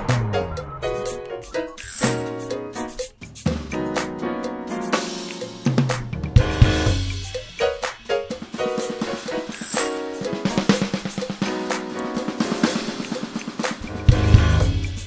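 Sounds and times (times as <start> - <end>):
acoustic drum kit playing: 0.0 - 15.0
backing track music: 0.0 - 15.0.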